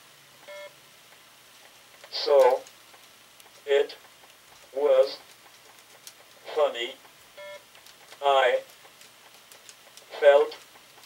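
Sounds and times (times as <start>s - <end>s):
electronic beep: 7.4s - 7.6s.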